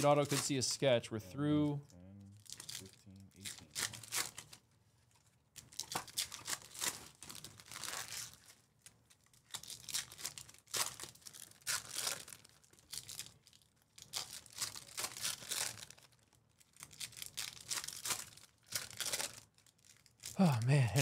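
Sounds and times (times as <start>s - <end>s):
foil wrappers tearing and crinkling: 0.0s - 0.6s, 2.4s - 4.6s, 5.6s - 20.4s.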